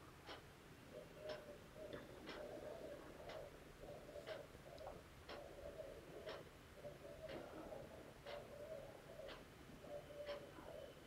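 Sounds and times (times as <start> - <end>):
faint clock ticking: 0.0 - 11.0.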